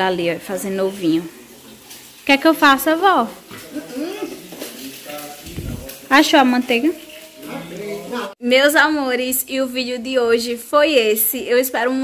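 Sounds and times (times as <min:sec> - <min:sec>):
egg sizzling in a pan: 0:00.0 - 0:08.4.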